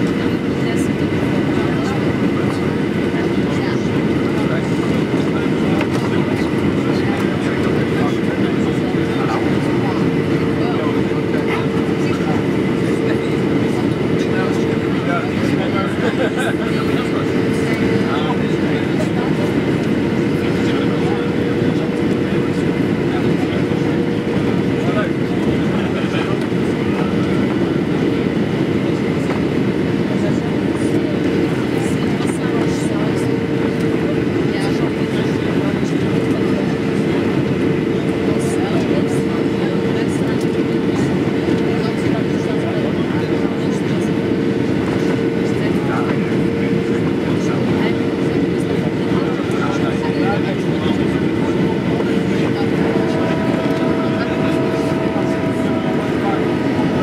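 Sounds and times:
airplane cabin engine rumble: 0:00.0 - 0:57.0
steady mid-pitched tone: 0:51.4 - 0:57.0
faint higher tones: 0:52.6 - 0:57.0.

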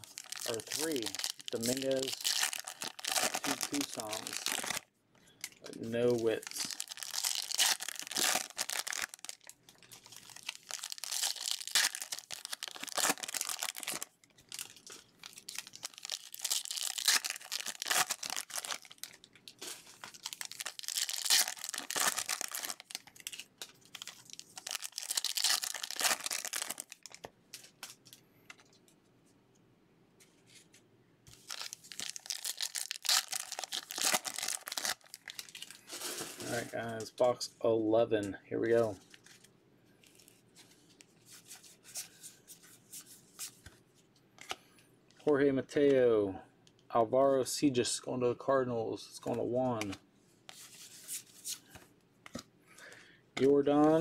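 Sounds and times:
foil wrappers tearing and crinkling: 0:00.0 - 0:04.8, 0:05.6 - 0:28.0, 0:31.3 - 0:36.7.

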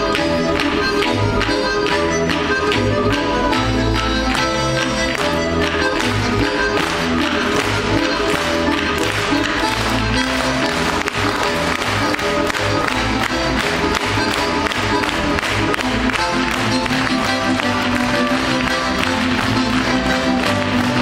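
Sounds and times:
folk dance music: 0:00.0 - 0:21.0.

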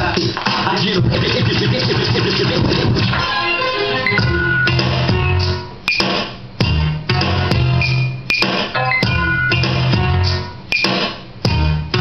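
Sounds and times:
hip-hop dj mix: 0:00.0 - 0:12.0.

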